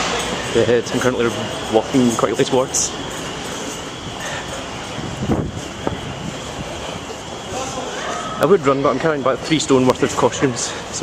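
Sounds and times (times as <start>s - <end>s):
hubbub of passers-by: 0.0s - 11.0s
footsteps on a walkway: 2.9s - 7.8s.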